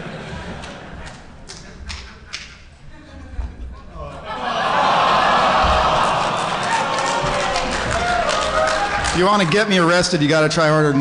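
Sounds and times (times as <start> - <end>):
audience murmuring: 0.0 - 9.3.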